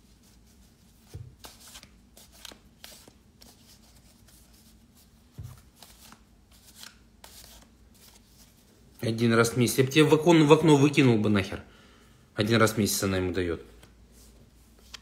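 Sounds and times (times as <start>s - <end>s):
cards shuffled by hand: 0.2s - 8.7s.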